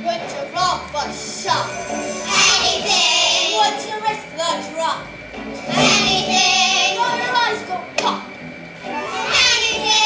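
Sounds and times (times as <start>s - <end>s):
children singing a show tune: 0.0s - 5.0s, 5.6s - 8.3s, 8.9s - 10.0s
musical accompaniment: 0.0s - 10.0s.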